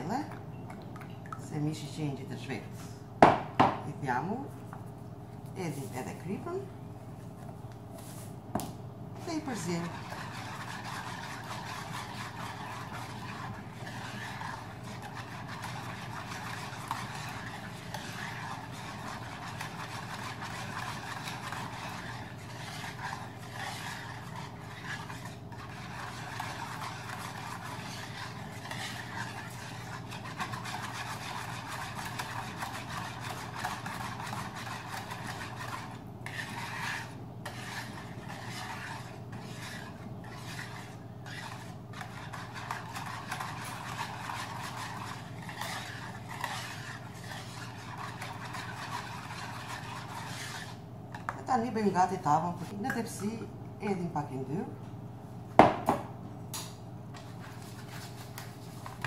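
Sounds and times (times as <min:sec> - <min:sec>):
wire whisk scraping plastic bowl: 0:09.2 - 0:51.7.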